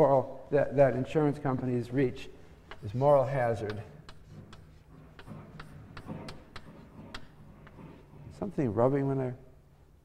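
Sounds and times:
chalk ticking on blackboard: 2.6s - 7.8s.

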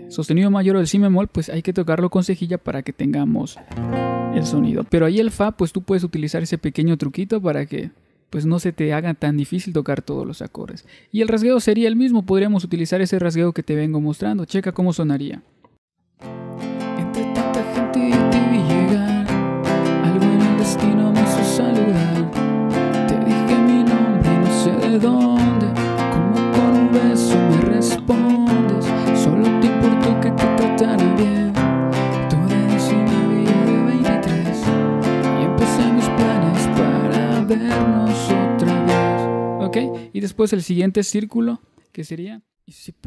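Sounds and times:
classical guitar strumming: 3.7s - 4.9s, 16.2s - 40.1s.

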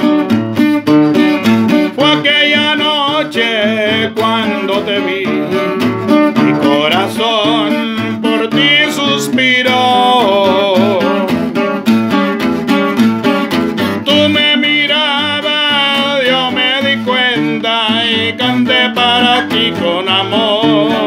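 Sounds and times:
strummed acoustic guitar: 0.0s - 21.0s
man singing: 1.7s - 11.6s, 13.8s - 21.0s.

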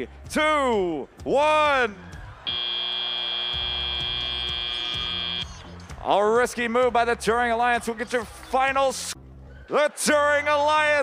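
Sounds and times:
high-pitched electronic buzzer: 2.5s - 5.6s.

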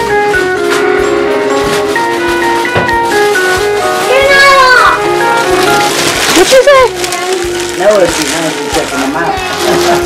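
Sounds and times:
music with held notes: 0.0s - 10.0s
young children's voices: 4.0s - 5.2s, 6.8s - 7.7s.

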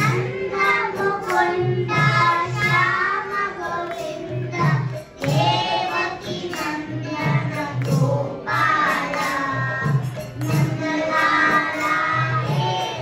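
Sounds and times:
children singing into microphones: 0.0s - 13.0s
percussion beat: 0.0s - 13.0s.

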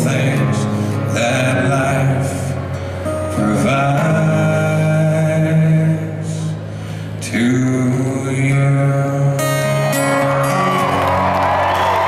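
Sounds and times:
man singing: 0.0s - 11.1s
acoustic guitar: 0.0s - 12.0s.

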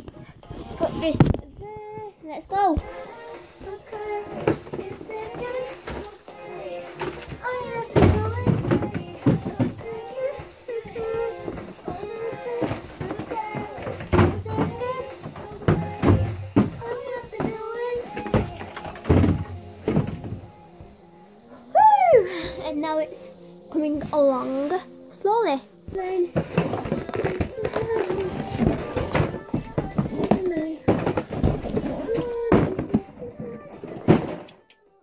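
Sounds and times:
person singing: 0.0s - 35.0s.

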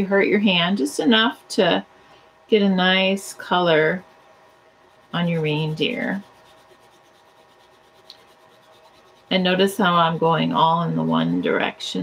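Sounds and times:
crayon scratching on paper: 3.7s - 11.5s.

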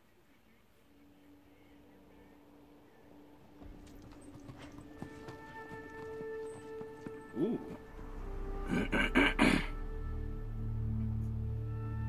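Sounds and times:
held music notes: 1.1s - 12.0s
horse hooves clopping: 3.4s - 8.4s.

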